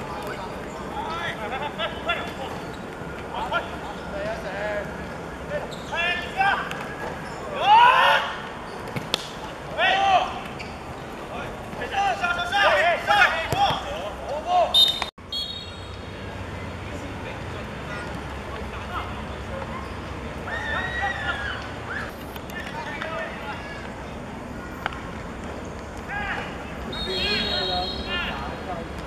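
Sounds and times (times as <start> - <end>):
footballers shouting: 0.0 - 8.6, 9.5 - 10.6, 11.2 - 15.1, 17.8 - 24.0, 26.0 - 28.5
distant voices: 0.0 - 29.0
outdoor background noise: 0.0 - 29.0.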